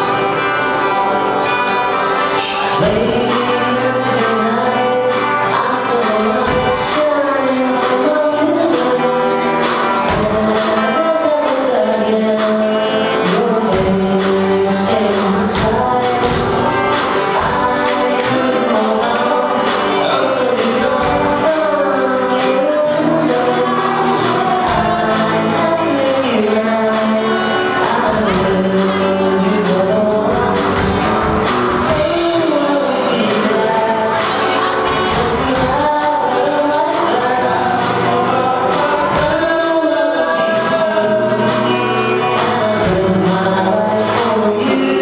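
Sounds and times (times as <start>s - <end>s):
acoustic guitar: 0.0s - 45.0s
drums: 0.0s - 45.0s
electric guitar: 0.0s - 45.0s
person singing: 0.0s - 45.0s.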